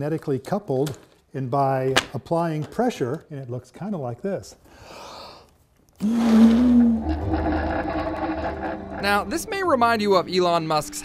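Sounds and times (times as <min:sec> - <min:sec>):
machine whirring: 0:06.1 - 0:09.5
low hum: 0:06.2 - 0:10.2.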